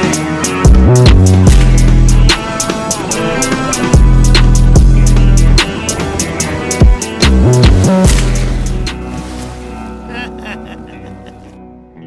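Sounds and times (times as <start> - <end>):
film music: 0.0 - 12.0
water bubbling and sloshing: 1.4 - 10.1.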